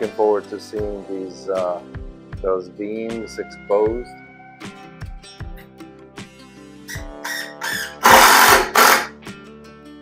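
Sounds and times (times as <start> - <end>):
acoustic guitar background music: 0.0 - 10.0
power tool running in bursts: 7.7 - 9.1.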